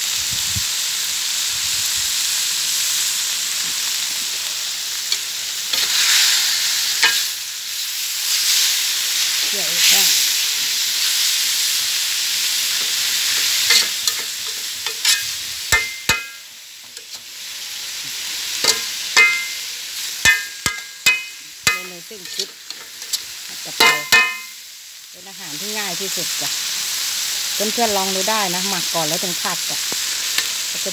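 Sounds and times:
food sizzling in a wok: 0:00.0 - 0:30.9
metal spatula scraping: 0:05.1 - 0:07.4, 0:12.7 - 0:16.4, 0:18.6 - 0:24.5
spatula clanking on wok: 0:07.0 - 0:07.4, 0:12.8 - 0:17.2, 0:18.6 - 0:19.6, 0:20.2 - 0:23.2, 0:23.8 - 0:24.6.

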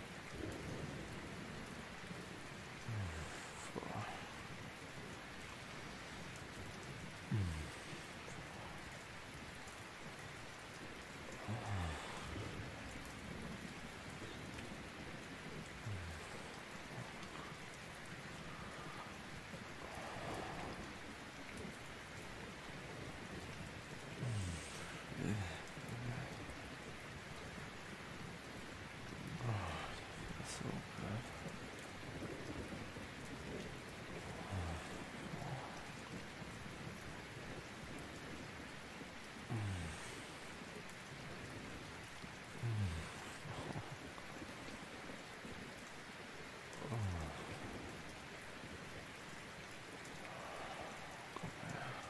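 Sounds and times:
steady rain hissing: 0:00.0 - 0:52.0.

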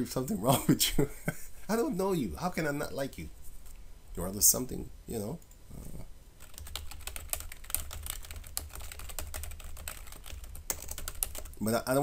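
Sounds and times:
fast keyboard typing: 0:06.4 - 0:11.6.

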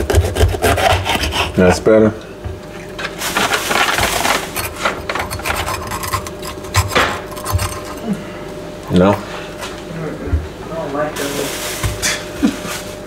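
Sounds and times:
knife scraping on cutting board: 0:00.0 - 0:01.6, 0:04.0 - 0:08.1.

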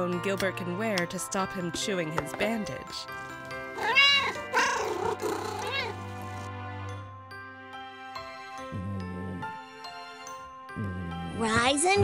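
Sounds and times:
soft background music: 0:00.0 - 0:12.0
cat meowing: 0:03.7 - 0:06.1.

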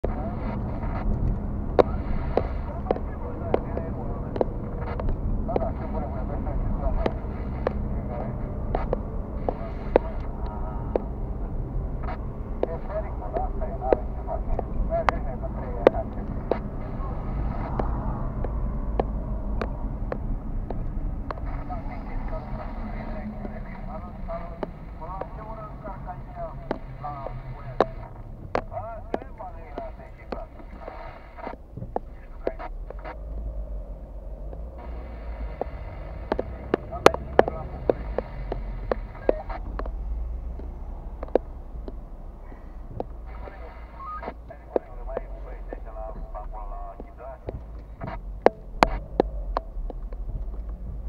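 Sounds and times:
engine and tyre rumble: 0:00.0 - 0:51.0
sharp clicks and knocks: 0:35.6 - 0:42.0, 0:46.9 - 0:51.0.

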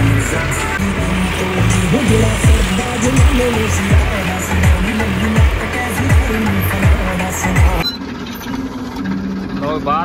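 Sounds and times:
man's voice: 0:00.0 - 0:07.8
diesel tractor engine idling: 0:00.0 - 0:10.0.

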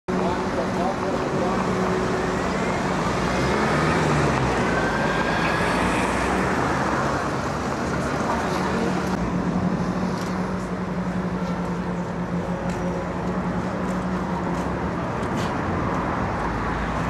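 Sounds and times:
people talking: 0:00.1 - 0:02.0
city street traffic: 0:00.1 - 0:17.0.

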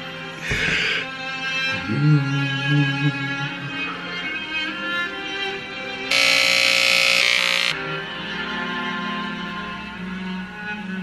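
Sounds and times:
string music: 0:00.0 - 0:11.0
hair clippers buzzing: 0:06.1 - 0:07.8.

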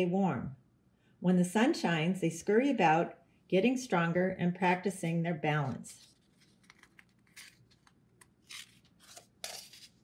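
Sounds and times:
paper page turning: 0:06.0 - 0:10.0.

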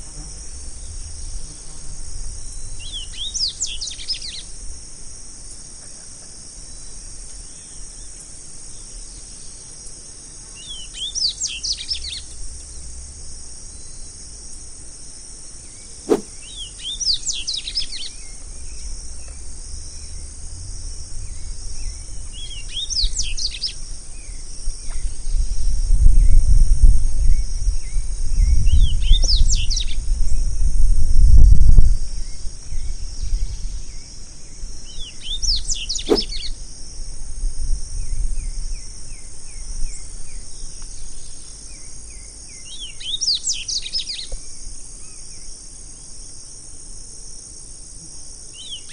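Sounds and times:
steady high hiss: 0:00.0 - 0:25.9
bird twittering song: 0:02.4 - 0:04.5, 0:10.6 - 0:12.9, 0:15.6 - 0:20.2, 0:21.2 - 0:25.6, 0:27.3 - 0:30.0, 0:34.8 - 0:36.6, 0:38.0 - 0:44.4
bird singing whistled notes: 0:10.6 - 0:12.3, 0:15.7 - 0:18.8, 0:21.3 - 0:25.6, 0:34.9 - 0:36.5
sharp click: 0:36.1 - 0:36.4.

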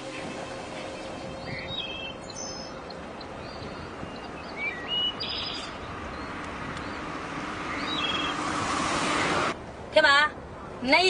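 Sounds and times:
small birds chirping: 0:01.2 - 0:08.4.

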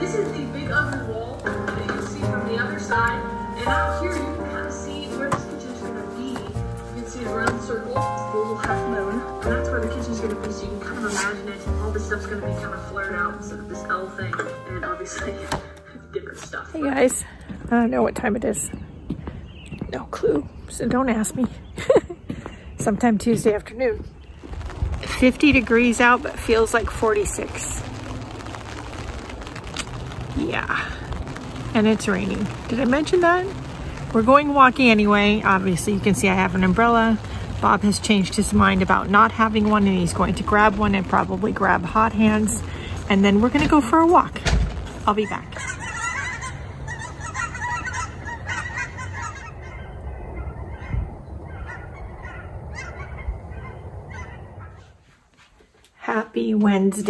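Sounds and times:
rain falling on an umbrella: 0:00.0 - 0:15.2, 0:24.3 - 0:46.4
low rumble: 0:24.1 - 0:54.8
geese honking: 0:45.1 - 0:54.9.

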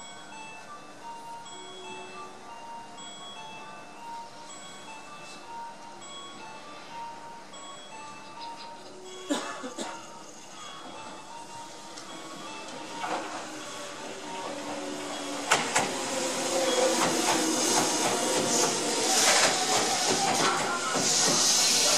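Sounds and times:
train running gear whine: 0:09.9 - 0:21.9
train hiss: 0:10.0 - 0:21.9.

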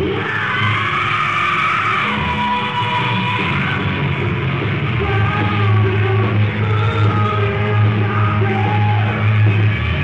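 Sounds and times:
muffled hard rock band: 0:00.0 - 0:10.0.

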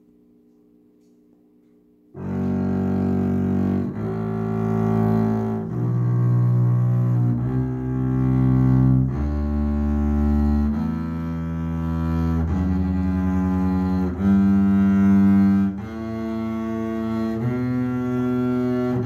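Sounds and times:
bowed double bass scale: 0:02.2 - 0:19.0.

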